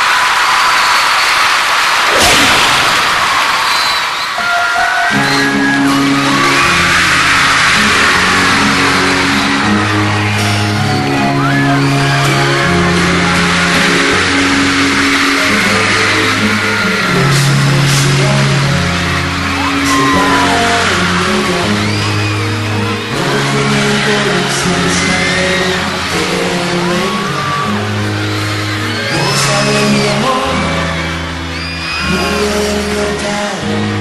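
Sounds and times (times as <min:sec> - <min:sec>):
audience screaming and whooping: 0:00.0 - 0:34.0
keyboard and bass chords: 0:04.4 - 0:34.0.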